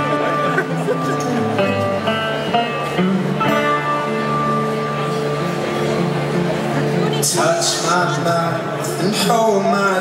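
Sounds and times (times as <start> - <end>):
plucked guitar notes: 0.0 - 9.6.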